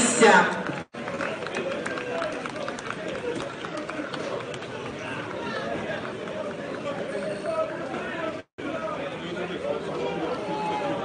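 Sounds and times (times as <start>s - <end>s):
men shouting and talking: 1.3s - 11.0s.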